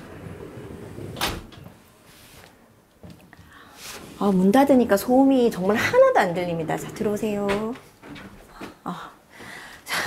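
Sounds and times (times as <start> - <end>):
sliding door rumbling on track: 0.0 - 1.6, 4.9 - 8.3.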